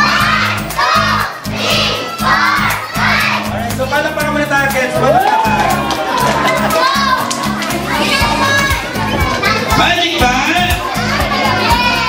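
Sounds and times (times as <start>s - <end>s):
children calling out and chattering: 0.0s - 3.9s, 5.5s - 12.0s
background music with bass line: 0.0s - 12.0s.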